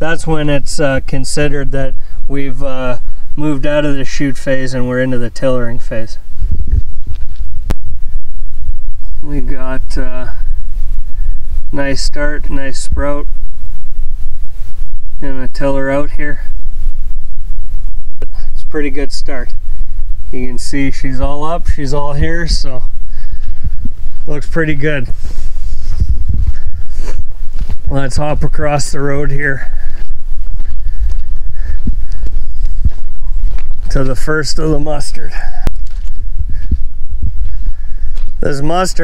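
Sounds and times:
wind buffeting microphone: 0.0 - 39.0
footsteps on stony soil: 6.0 - 11.1, 19.5 - 39.0.

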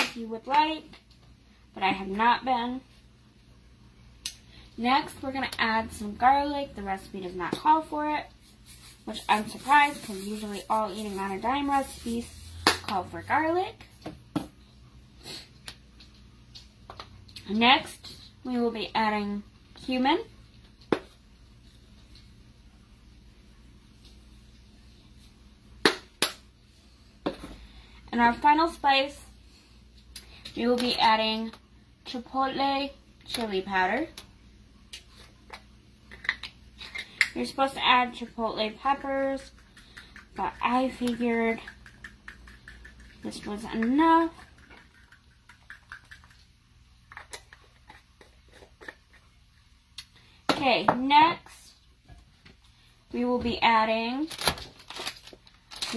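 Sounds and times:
low room hum: 0.0 - 55.9.

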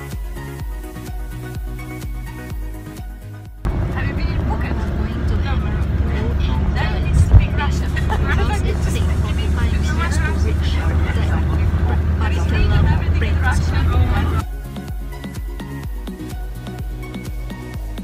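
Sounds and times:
car cabin rumble: 3.6 - 14.4
woman talking: 3.8 - 14.4
brief thump: 7.2 - 7.5.

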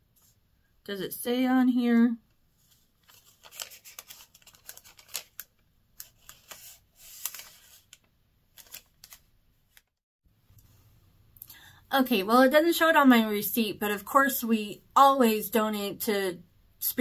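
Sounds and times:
paper receipt crinkling: 2.7 - 10.0.

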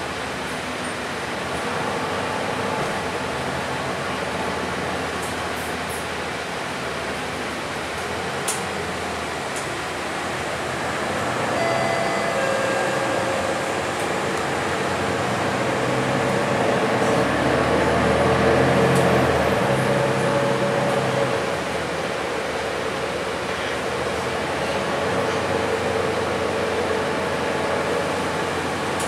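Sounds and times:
bus cabin hiss and hum: 0.0 - 29.0.

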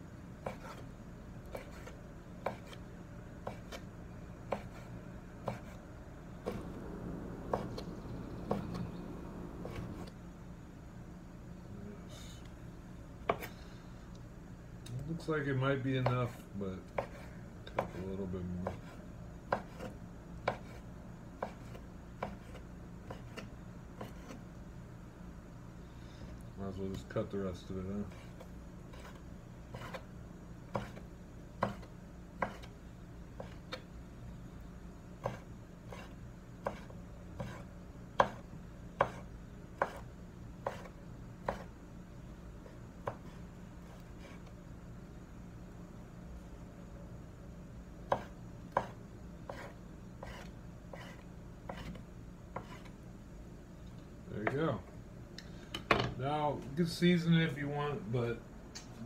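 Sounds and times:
low steady hum: 0.0 - 59.0
knife chopping on wooden board: 1.5 - 2.8, 3.4 - 3.8, 4.5 - 5.8, 6.4 - 8.9, 13.2 - 13.5, 16.9 - 20.8, 21.4 - 24.4, 30.7 - 31.0, 31.6 - 32.7, 35.2 - 38.4, 39.0 - 41.7, 43.0 - 43.4, 48.1 - 52.0, 52.6 - 52.9.

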